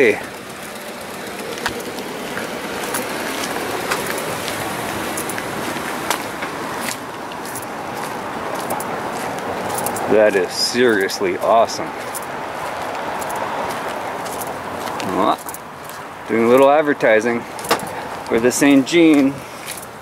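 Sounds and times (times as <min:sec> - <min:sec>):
outdoor background noise: 0:00.0 - 0:20.0.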